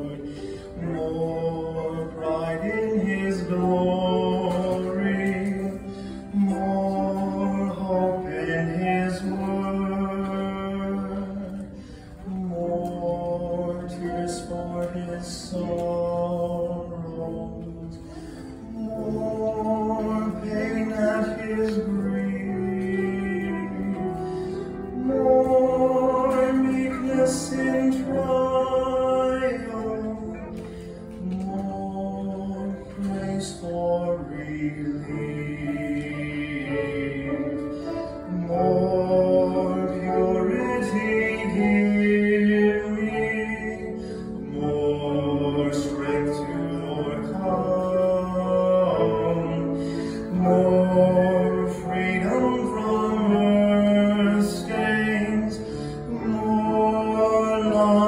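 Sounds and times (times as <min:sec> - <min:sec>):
man singing a hymn: 0:00.0 - 0:58.0
musical accompaniment: 0:00.0 - 0:58.0.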